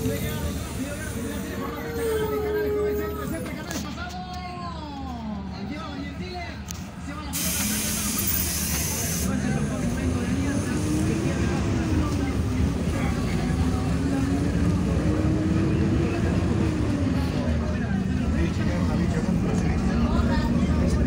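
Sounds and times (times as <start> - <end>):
bus engine drone: 0.0 - 21.0.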